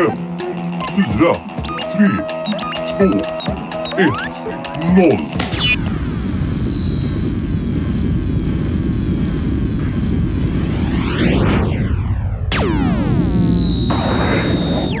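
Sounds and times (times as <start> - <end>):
electronic tones swooping down: 5.4 - 15.0.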